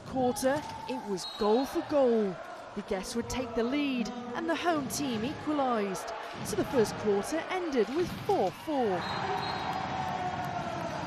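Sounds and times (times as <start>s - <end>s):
crowd and venue noise: 0.0s - 11.0s.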